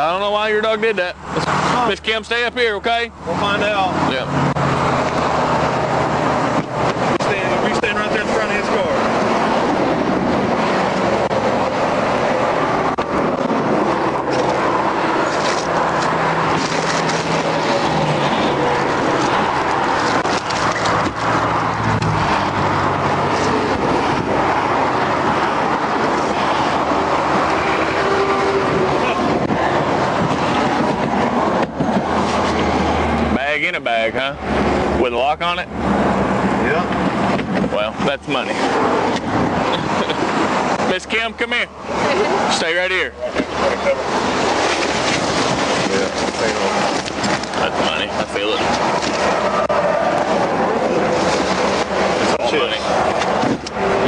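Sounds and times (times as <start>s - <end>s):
highway traffic passing: 0.0s - 54.0s.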